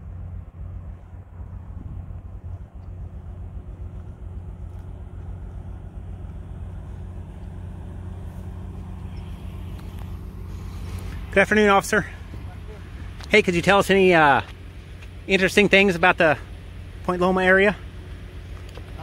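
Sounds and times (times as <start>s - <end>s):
car engine idling: 0.0s - 19.0s
outdoor background noise: 0.0s - 19.0s.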